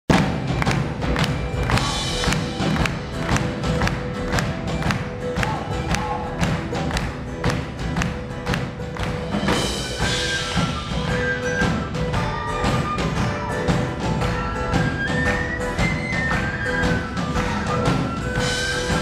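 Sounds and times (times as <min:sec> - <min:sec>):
banjo: 0:00.1 - 0:19.0
drum kit quick beat: 0:00.1 - 0:19.0
guitars: 0:00.1 - 0:19.0
keyboards: 0:00.1 - 0:19.0
upright bass: 0:00.1 - 0:19.0.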